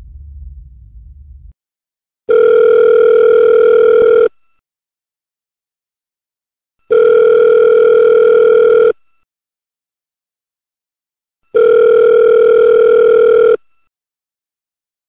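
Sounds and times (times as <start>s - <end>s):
telephone ringback tone: 2.3s - 4.4s, 6.9s - 9.0s, 11.5s - 13.7s.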